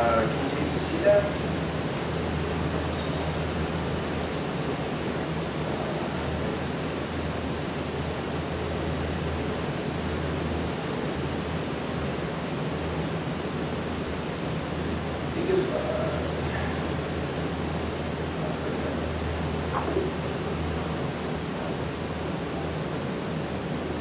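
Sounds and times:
room background hiss: 0.0s - 24.0s.

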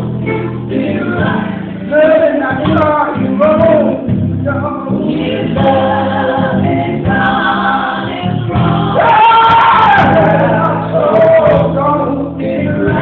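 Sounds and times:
band accompaniment: 0.0s - 13.0s
gospel group singing in harmony: 0.0s - 13.0s.

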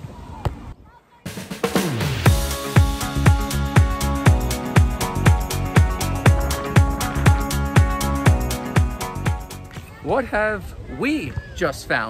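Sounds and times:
electronic background music: 1.6s - 9.7s
deep kick drum: 2.3s - 9.4s.

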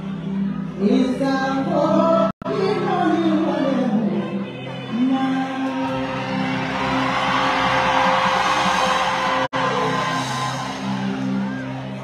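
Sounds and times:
crowd noise: 0.0s - 12.0s
live concert music: 0.0s - 12.0s.

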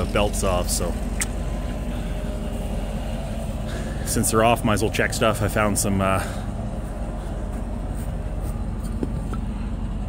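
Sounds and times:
combine harvester engine idling: 0.0s - 10.0s.

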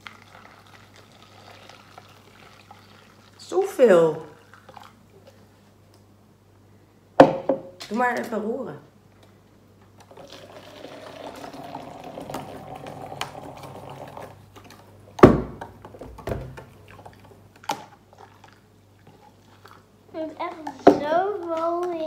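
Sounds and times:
hot water pouring into container: 0.0s - 5.0s, 10.1s - 14.4s.

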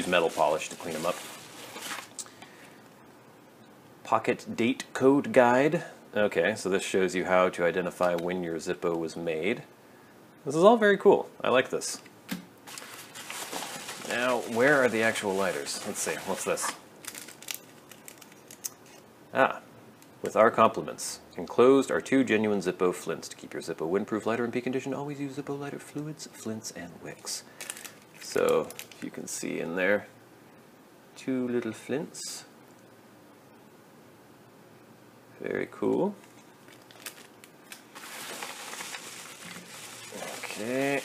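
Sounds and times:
plastic packet crinkling: 0.0s - 2.3s, 12.7s - 19.0s, 27.5s - 29.2s, 36.2s - 41.0s.

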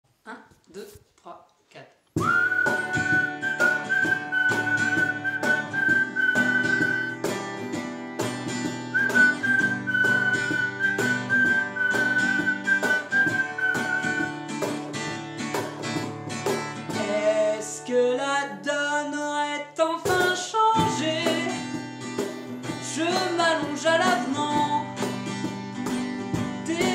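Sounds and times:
whistled melody: 2.2s - 7.3s, 8.9s - 14.6s
cajon beat: 2.2s - 17.8s, 20.0s - 26.9s
strummed acoustic guitar: 2.2s - 26.9s.

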